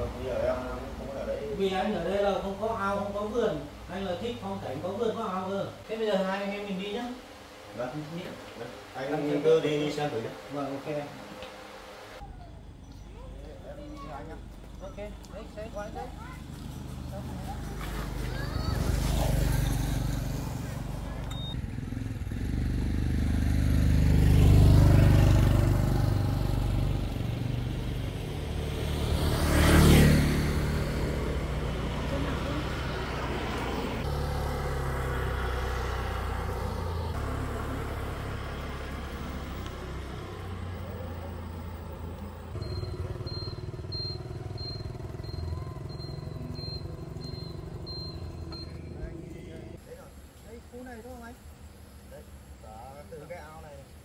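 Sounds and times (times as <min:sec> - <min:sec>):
motor scooter engine: 0:14.1 - 0:49.8
high chirp: 0:42.6 - 0:49.1.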